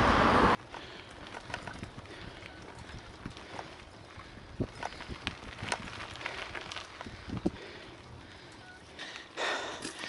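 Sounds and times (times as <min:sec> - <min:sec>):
bicycle rolling over rough road: 0:00.5 - 0:10.0.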